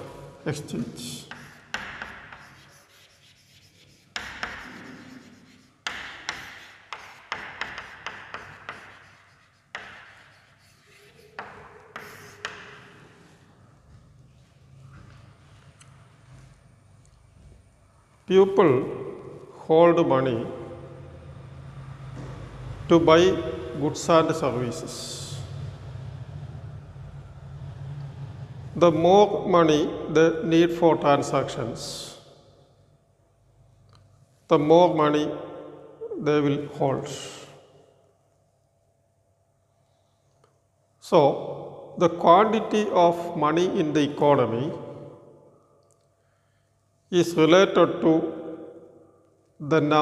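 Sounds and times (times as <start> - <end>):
chalk scratching on a blackboard: 1.2 - 13.0
low hum and rumble: 20.2 - 30.4.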